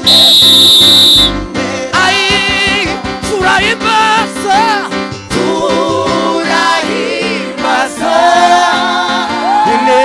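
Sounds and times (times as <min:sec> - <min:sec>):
shrill high tone: 0:00.0 - 0:01.4
gospel choir with band: 0:00.0 - 0:03.9, 0:04.8 - 0:10.0.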